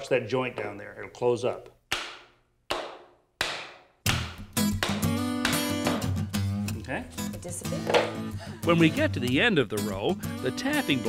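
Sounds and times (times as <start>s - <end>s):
acoustic guitar music: 4.2s - 11.0s.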